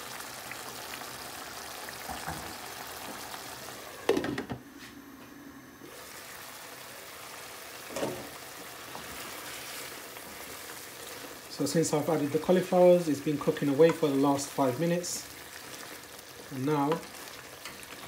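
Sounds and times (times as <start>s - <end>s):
sauce bubbling and sizzling in pan: 0.0s - 3.9s, 5.9s - 18.0s
wooden spoon stirring: 8.8s - 18.0s.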